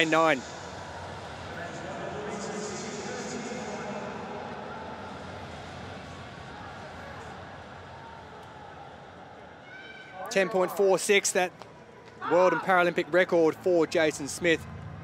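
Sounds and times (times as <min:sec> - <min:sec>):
stadium background noise: 0:00.0 - 0:15.0.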